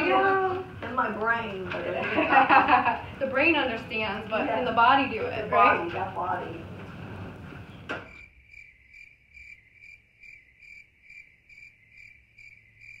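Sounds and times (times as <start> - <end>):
cricket chirping: 8.0 - 13.0.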